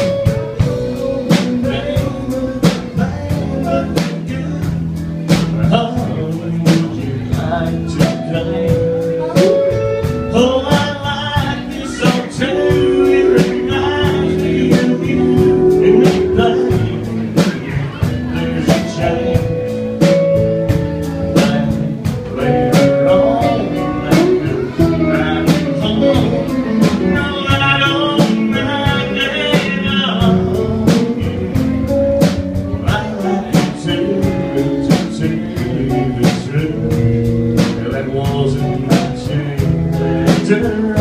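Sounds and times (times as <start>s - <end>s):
electric guitars: 0.0s - 41.0s
harmonica lead line: 0.0s - 41.0s
steady drum beat: 0.0s - 41.0s.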